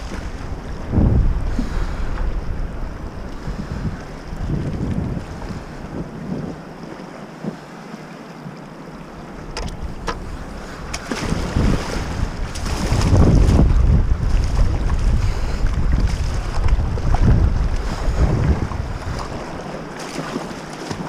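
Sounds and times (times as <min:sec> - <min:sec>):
wind buffeting microphone: 0:00.0 - 0:07.7, 0:09.4 - 0:21.0
rushing whitewater: 0:00.0 - 0:21.0.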